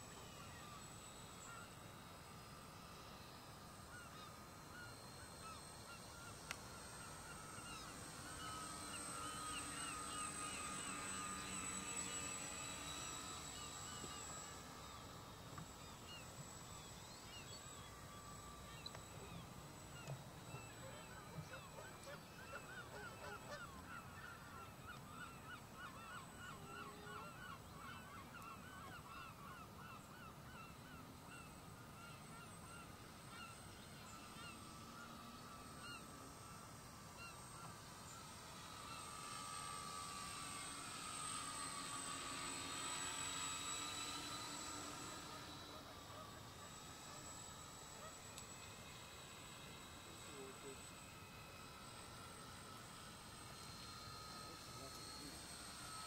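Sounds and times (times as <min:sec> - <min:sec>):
distant model plane motors passing: 0:00.0 - 0:56.0
birds calling: 0:16.9 - 0:34.6.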